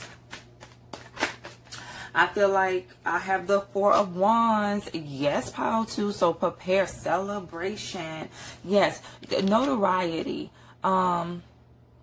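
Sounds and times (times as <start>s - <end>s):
cards shuffling: 0.0s - 1.8s.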